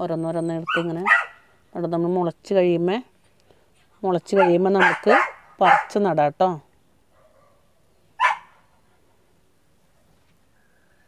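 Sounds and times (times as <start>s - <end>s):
dog barking: 0.7s - 1.4s, 4.4s - 6.0s, 7.1s - 8.8s.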